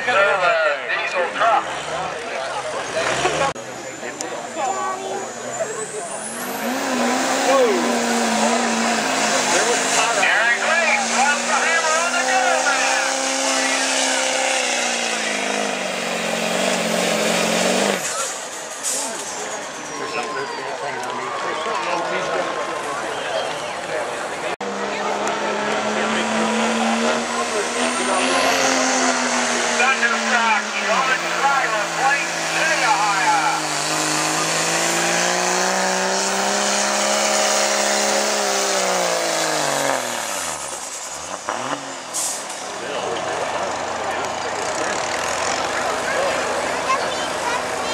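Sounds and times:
diesel truck engine at full throttle: 0.0s - 47.9s.

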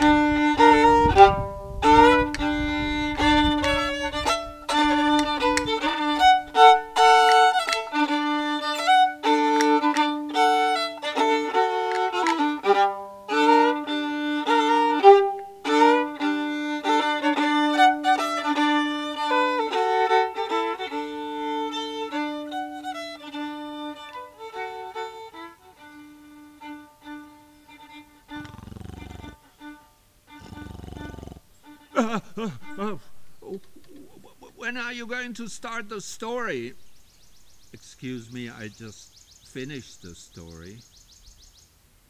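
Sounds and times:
low held violin note: 0.0s - 28.6s
solo violin playing lively tune: 0.0s - 36.3s
person mock snoring: 28.4s - 29.4s, 30.4s - 32.2s.

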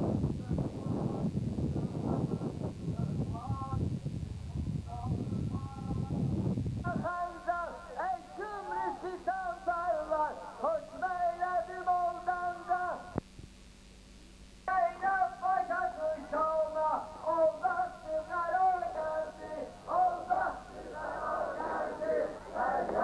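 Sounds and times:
person chanting a lament: 6.9s - 13.2s, 14.7s - 23.0s.

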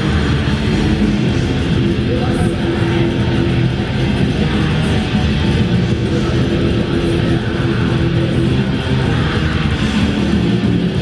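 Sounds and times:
live band electric guitars: 0.0s - 11.0s.

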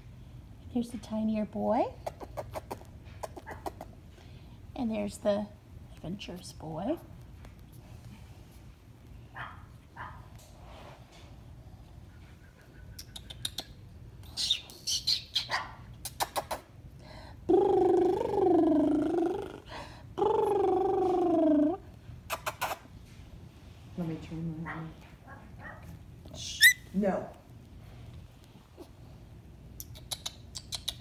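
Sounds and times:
puppies squeaking: 26.3s - 26.9s
puppy high squeal: 26.4s - 26.9s.

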